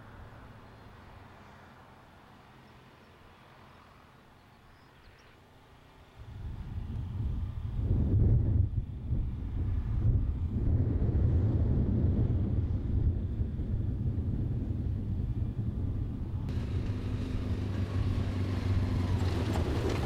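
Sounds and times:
low engine drone: 6.2s - 20.0s
wind noise on microphone: 6.2s - 20.0s.

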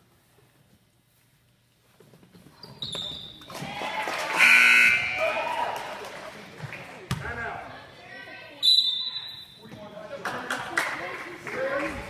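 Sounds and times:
sneakers squeaking on court: 2.2s - 3.5s.

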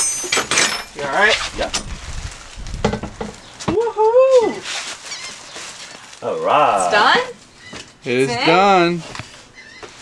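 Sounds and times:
plastic wrap rustling: 0.9s - 8.0s.

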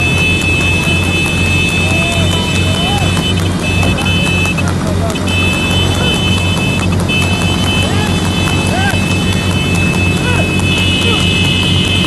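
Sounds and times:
horse hoofbeats trotting: 0.0s - 12.0s
vehicle engine humming: 0.0s - 12.0s
person shouting: 10.2s - 11.4s.

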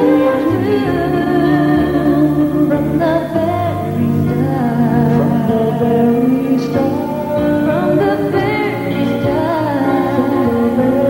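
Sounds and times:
person singing pop ballad: 0.0s - 11.0s
soft instrumental accompaniment: 0.0s - 11.0s.

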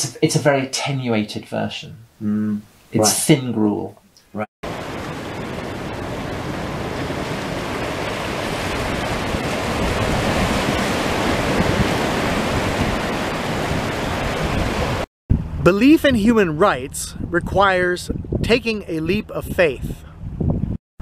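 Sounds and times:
ocean surf washing on rocks: 4.6s - 15.1s.

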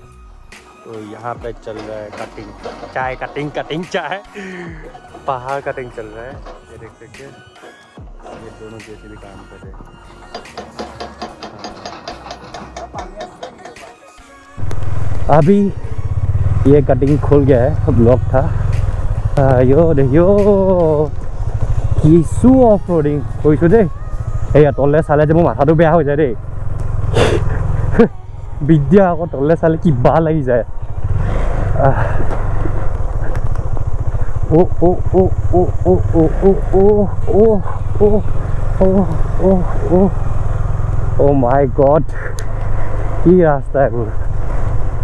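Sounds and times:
motorcycle engine running: 1.0s - 14.0s, 14.6s - 45.0s
rock breaker hammering rock: 10.2s - 14.1s.

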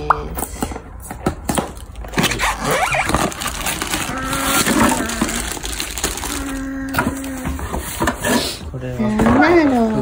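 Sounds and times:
cardboard and plastic rustling: 1.0s - 8.6s.

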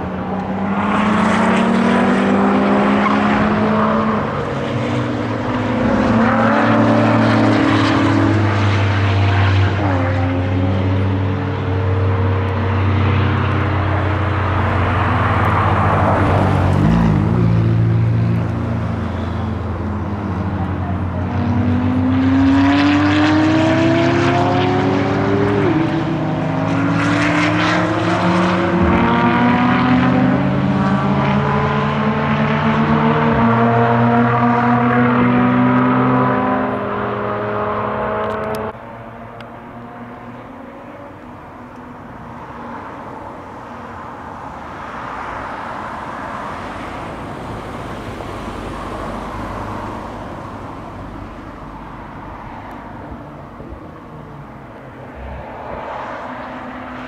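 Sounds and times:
sports car engines at high revs: 0.0s - 41.8s.

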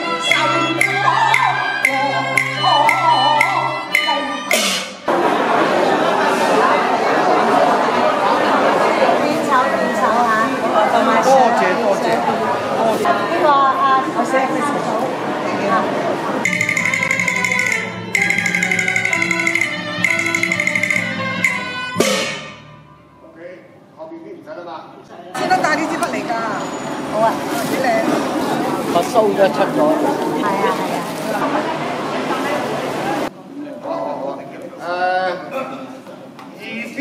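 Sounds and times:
wavering opera melody: 0.0s - 4.6s, 16.4s - 22.0s
crowd chatter: 0.0s - 23.4s, 24.0s - 37.0s
ringing percussion strike: 0.3s - 5.0s, 16.4s - 23.2s
sharp percussion strikes: 0.3s - 5.1s, 16.4s - 23.1s.

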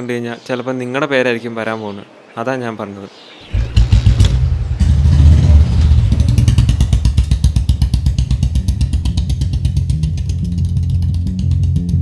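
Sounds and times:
motorcycle engine revving: 3.5s - 12.0s.

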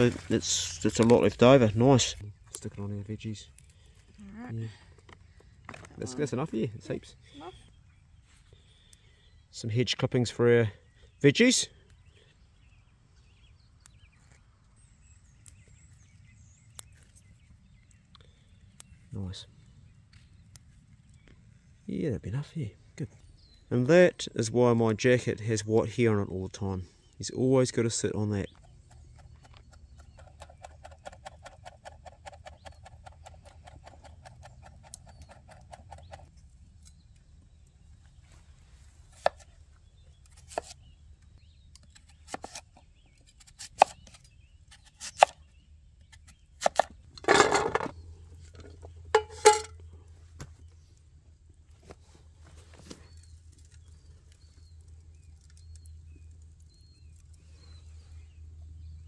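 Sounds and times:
knife cutting sweet potato: 44.8s - 45.4s.

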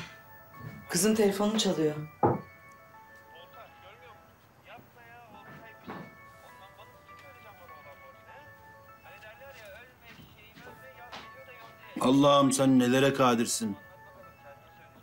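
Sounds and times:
mobile phone ringtone: 0.0s - 15.0s.

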